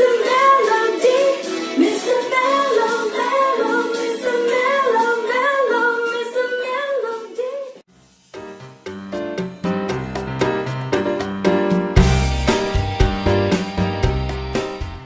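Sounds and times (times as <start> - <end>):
woman singing: 0.0 - 7.8.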